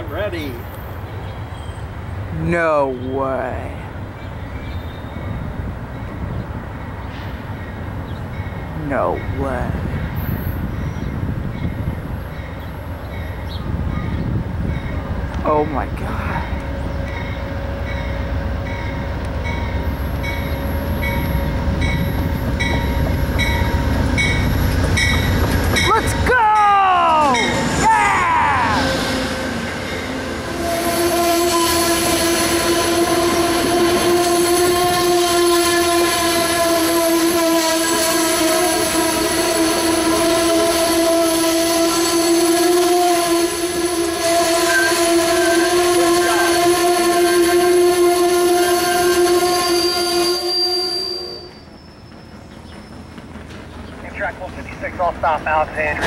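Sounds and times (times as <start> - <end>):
locomotive rumbling past: 0.0 - 56.0
train brakes squealing: 37.4 - 46.8, 48.4 - 53.2.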